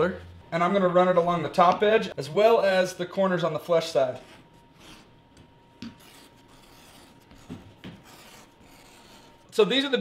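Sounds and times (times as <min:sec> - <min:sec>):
leather edge beveler scraping: 0:05.8 - 0:09.5.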